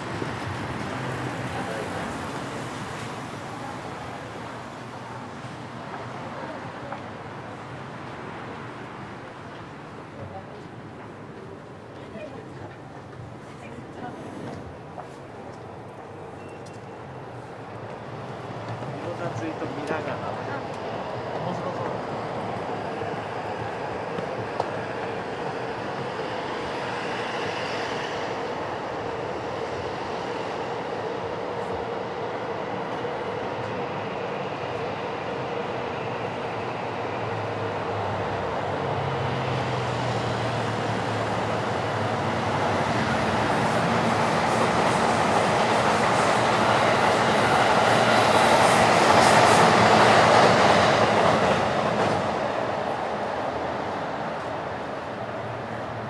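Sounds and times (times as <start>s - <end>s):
train passing: 0.0s - 56.0s.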